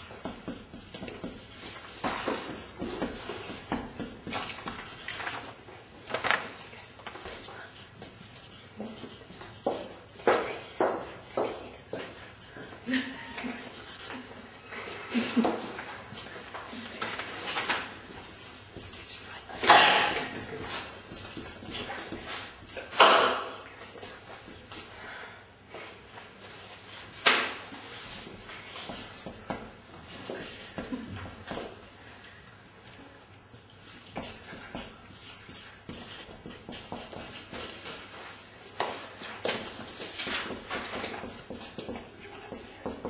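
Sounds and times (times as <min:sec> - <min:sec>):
marker scratching on paper: 0:00.0 - 0:05.4, 0:07.2 - 0:14.4, 0:16.7 - 0:23.1, 0:23.9 - 0:24.9, 0:27.1 - 0:31.8, 0:33.8 - 0:38.2, 0:39.2 - 0:43.0.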